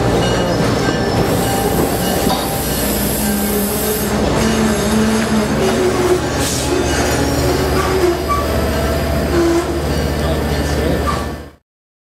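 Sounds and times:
train wheels rumbling on rails: 0.0s - 11.6s
wheels squealing: 1.2s - 10.4s.

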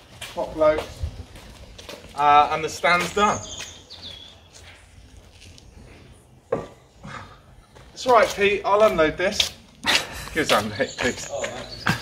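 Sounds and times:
low steady outdoor background: 0.0s - 12.0s.

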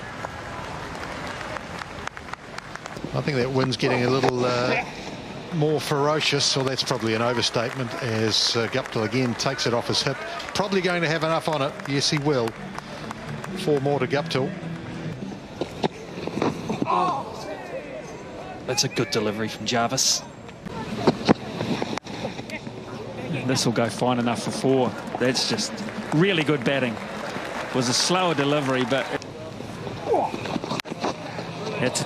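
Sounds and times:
crowd applauding: 0.0s - 4.5s, 5.8s - 15.7s, 23.5s - 30.8s.

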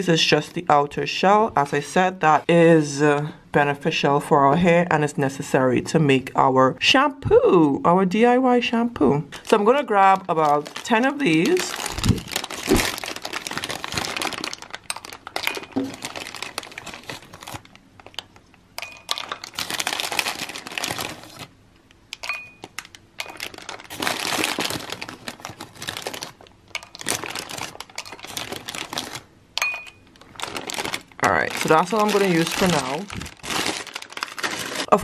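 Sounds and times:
plastic bag crinkling: 9.4s - 21.5s, 22.3s - 35.0s.

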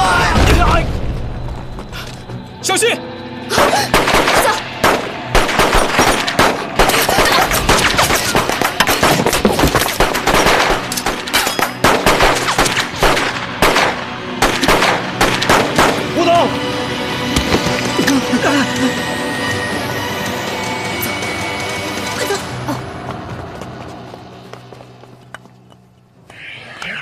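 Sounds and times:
automatic gunfire: 10.0s - 10.9s.

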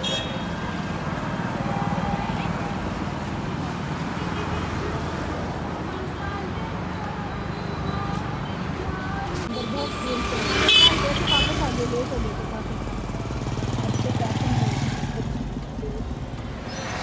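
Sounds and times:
vehicle horn beep: 0.0s - 0.5s, 10.6s - 11.6s
motorbike engine passing: 9.7s - 15.9s.

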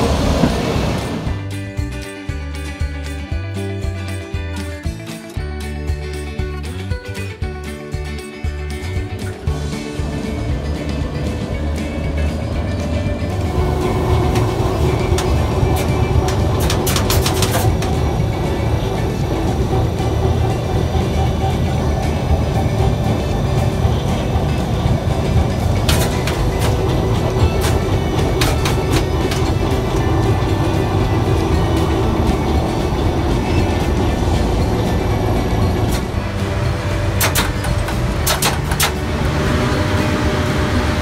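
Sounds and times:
electric locomotive humming: 0.0s - 41.0s
guitar music: 0.0s - 41.0s
sharp clicks and rattles: 8.7s - 39.5s.

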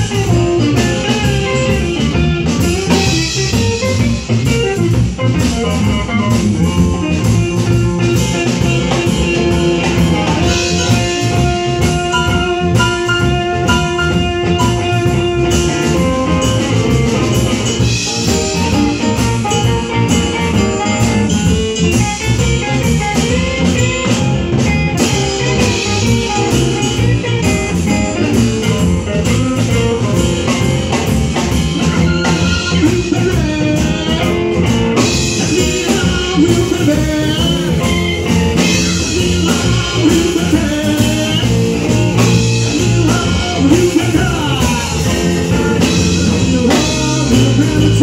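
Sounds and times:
live band playing instrumental: 0.0s - 48.0s.

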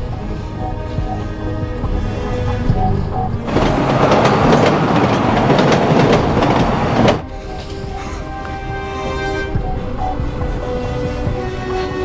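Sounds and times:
train running on rails: 0.0s - 12.0s
sharp rail clicks: 3.5s - 7.2s.

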